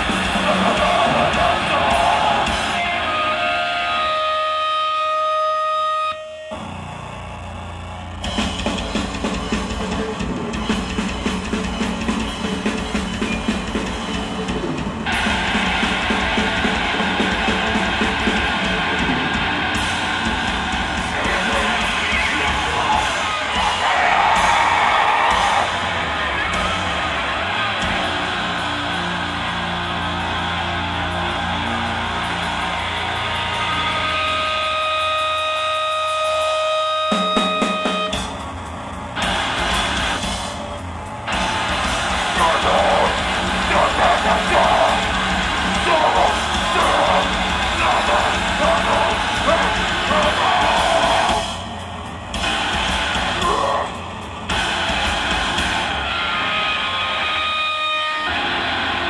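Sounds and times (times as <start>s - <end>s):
rapid drumming: 0.0s - 3.2s, 8.2s - 56.7s
distorted electric guitar: 0.0s - 59.0s.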